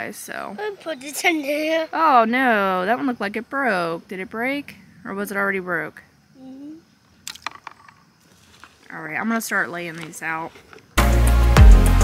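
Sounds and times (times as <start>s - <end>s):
seashells clicking: 7.2s - 9.0s.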